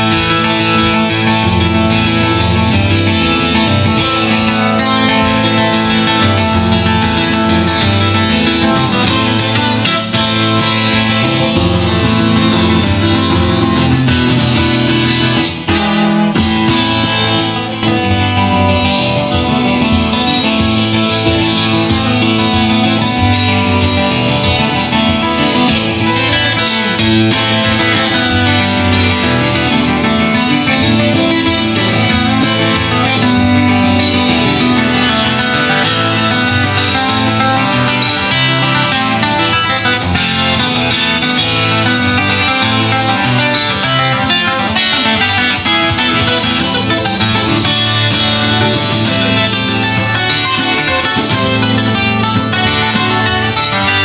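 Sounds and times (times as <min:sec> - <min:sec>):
picked acoustic guitar tune: 0:00.0 - 0:54.0.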